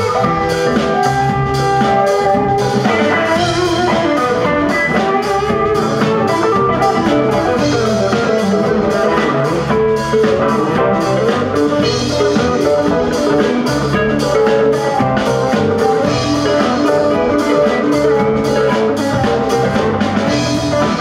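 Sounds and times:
bass guitar: 0.0 - 21.0
drum kit: 0.0 - 21.0
electric guitars: 0.0 - 21.0
keyboard: 0.0 - 21.0.

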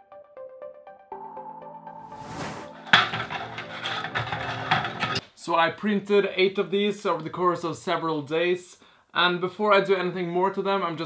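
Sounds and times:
plastic shells clattering: 2.8 - 5.2.

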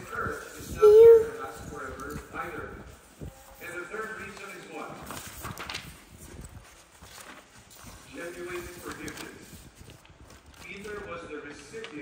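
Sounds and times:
person speaking: 0.0 - 1.7.

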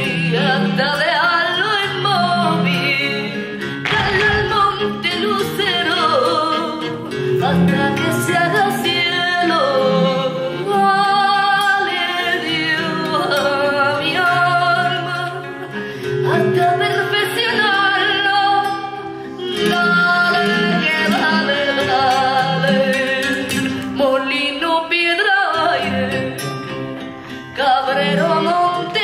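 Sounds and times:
flamenco music: 0.0 - 29.0.

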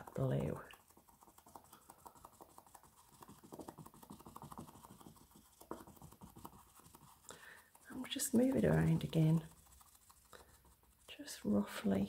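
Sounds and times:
sponge dabbing on canvas: 0.0 - 12.0.

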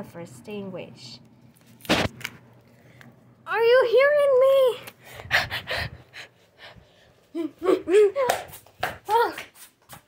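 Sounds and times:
person breathing quickly: 5.0 - 8.2.

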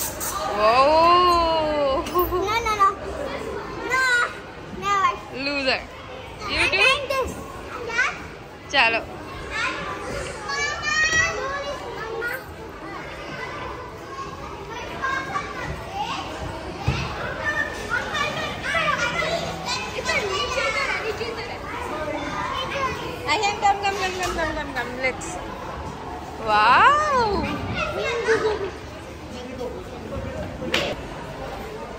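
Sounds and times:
children talking and calling out: 0.0 - 29.3.

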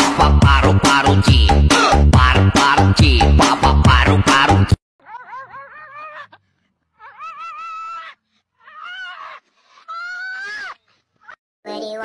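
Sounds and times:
animal warbling call: 5.0 - 11.4.

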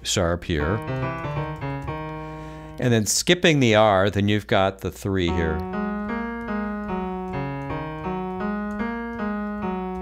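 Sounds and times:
person speaking: 0.0 - 6.1
piano notes: 0.4 - 3.6, 5.2 - 10.0
computer keyboard typing: 0.7 - 2.3, 5.4 - 10.0.

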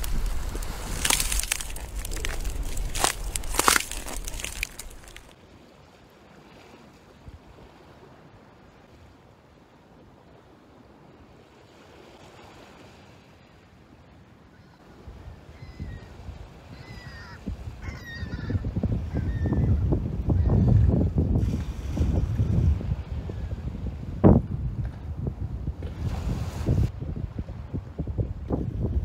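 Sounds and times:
low rumble: 0.0 - 5.3
wind buffeting microphone: 0.0 - 5.3, 15.0 - 29.0.

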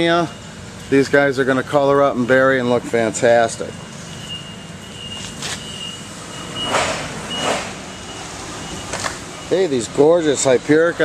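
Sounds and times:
reversing alarm beeping: 0.0 - 11.0.

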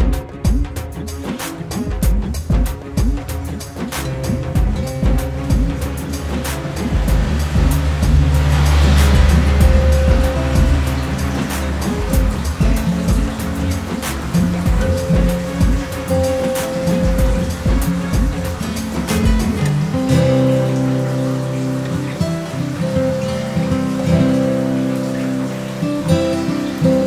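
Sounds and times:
background music with steady beat: 0.0 - 27.0
rush of noise: 0.0 - 27.0.

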